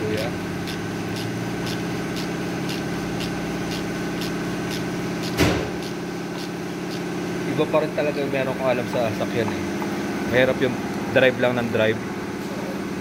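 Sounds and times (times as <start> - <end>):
steady mechanical hum: 0.0 - 13.0
ratchet wrench clicking: 0.6 - 7.1
loud knock: 5.4 - 5.8.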